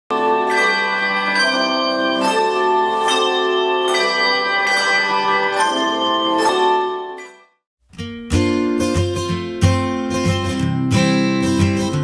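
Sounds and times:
handbells ringing: 0.1 - 7.5.

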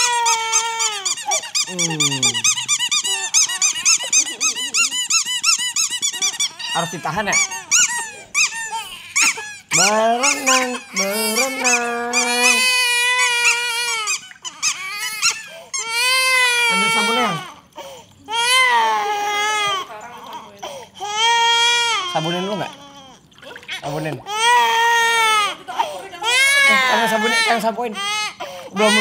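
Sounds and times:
infant crying: 0.0 - 5.0, 6.2 - 19.9, 20.6 - 29.0.

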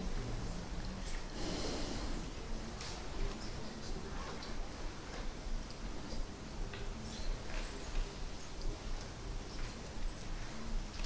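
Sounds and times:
breath out through nose: 1.4 - 2.3.

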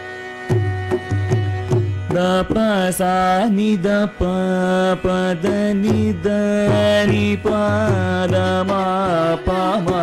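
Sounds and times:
violin accompaniment: 0.0 - 10.0.

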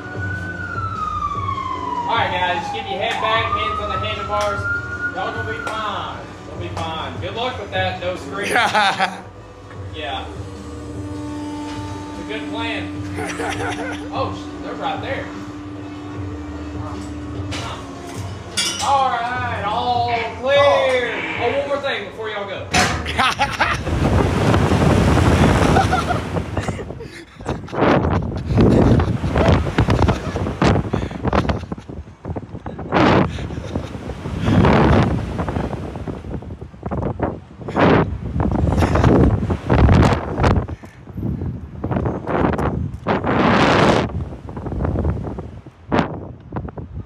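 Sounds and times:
wind buffeting microphone: 23.1 - 47.0.

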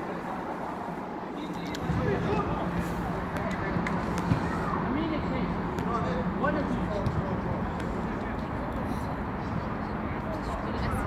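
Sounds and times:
low outdoor rumble and hiss: 0.0 - 11.0.

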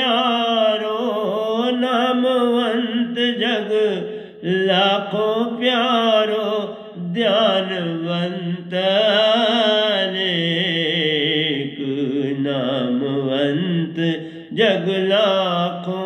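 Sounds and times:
man singing devotional song: 0.0 - 16.0.

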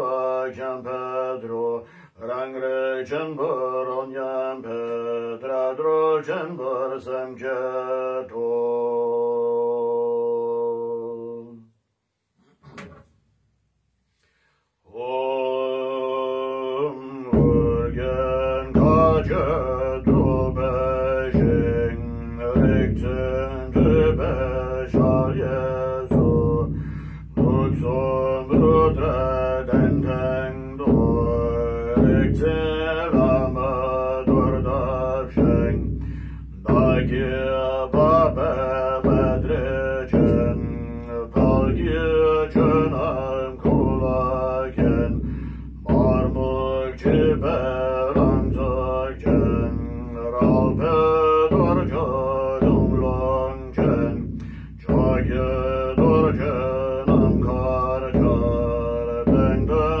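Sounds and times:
man chanting: 0.0 - 11.7, 14.9 - 60.0
large drum beating: 16.9 - 60.0.

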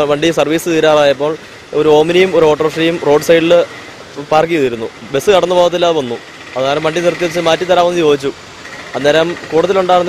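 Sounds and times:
man speaking close to microphone: 0.0 - 10.0.

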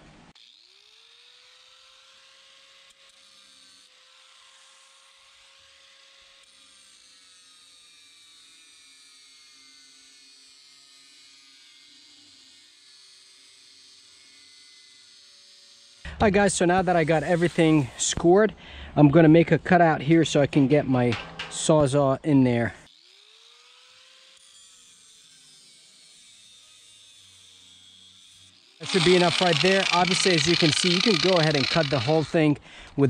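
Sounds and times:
angle grinder cutting steel: 0.5 - 18.4, 22.9 - 32.9.

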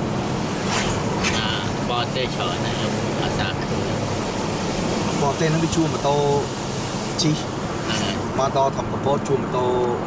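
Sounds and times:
car engine hum: 0.0 - 10.0
tyres hissing on wet road: 0.0 - 10.0.

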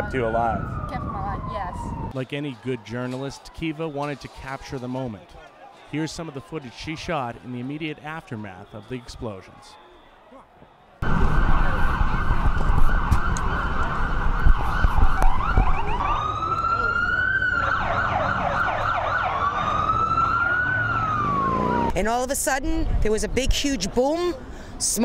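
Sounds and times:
low rumble of street noise: 0.0 - 2.3, 10.4 - 25.0
emergency vehicle sirens: 0.0 - 10.0, 11.0 - 22.0.

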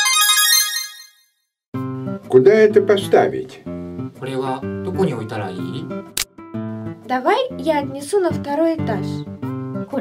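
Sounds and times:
guitar background music: 1.8 - 10.0.

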